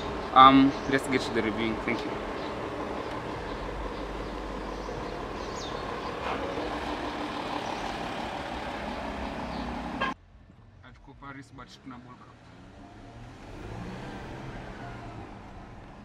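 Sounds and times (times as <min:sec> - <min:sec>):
car engine running: 0:00.0 - 0:10.2
road noise: 0:00.0 - 0:16.0.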